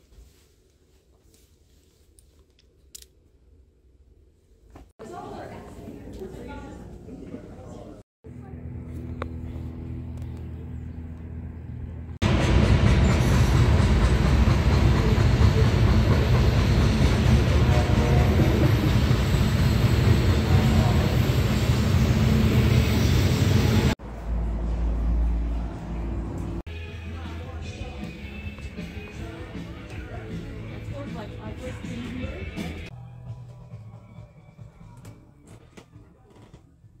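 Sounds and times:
freight train rumbling past: 9.4 - 32.9.

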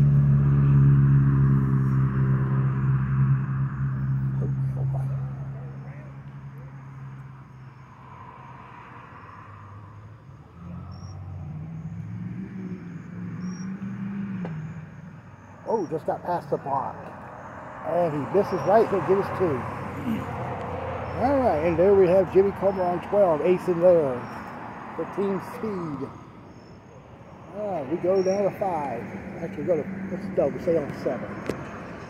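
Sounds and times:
vehicle engine running: 0.0 - 7.8, 10.4 - 26.4, 27.4 - 32.0
crickets chirping: 0.0 - 32.0
second engine passing: 0.0 - 32.0.

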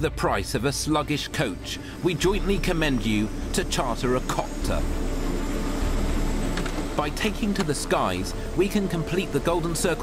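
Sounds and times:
helicopter rotor and engine drone: 0.0 - 10.0.

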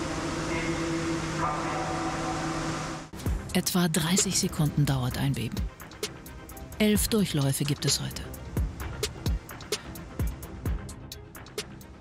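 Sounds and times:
heavy machinery humming: 0.0 - 3.2.

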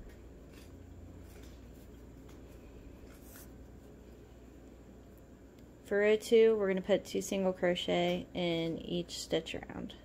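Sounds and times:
yarn rustling on crochet hook: 0.0 - 4.1
soft brushing strokes: 0.4 - 4.8.

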